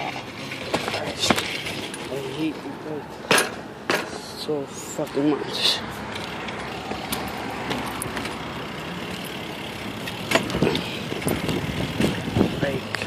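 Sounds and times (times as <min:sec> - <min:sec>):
bike rolling over pavement: 0:00.0 - 0:04.2, 0:04.8 - 0:13.0.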